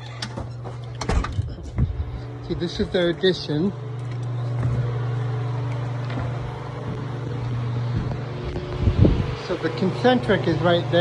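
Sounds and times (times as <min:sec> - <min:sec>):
air conditioner compressor hum: 0:00.0 - 0:11.0.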